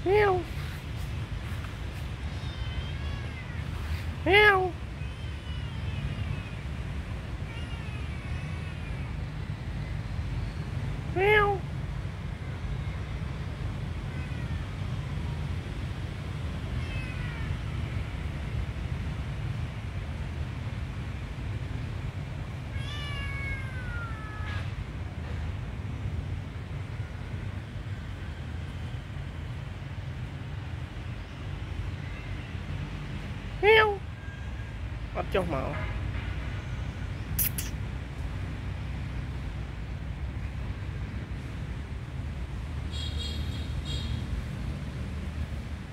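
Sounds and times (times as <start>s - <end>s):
kitten meowing: 2.3s - 6.5s, 16.8s - 17.6s, 22.7s - 24.6s, 37.4s - 37.7s.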